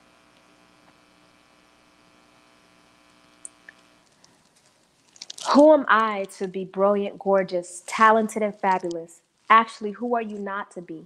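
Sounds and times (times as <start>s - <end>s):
faint mains hum: 0.0s - 11.0s
small ticks: 3.3s - 6.5s.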